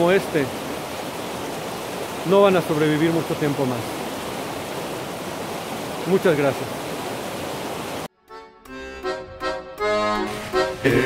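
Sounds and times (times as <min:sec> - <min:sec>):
water rushing over rocks: 0:00.0 - 0:08.1.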